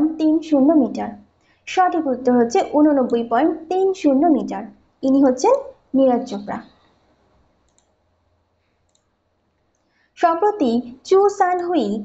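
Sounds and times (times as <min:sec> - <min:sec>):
faint short clicks: 0:07.6 - 0:08.0, 0:08.8 - 0:09.9.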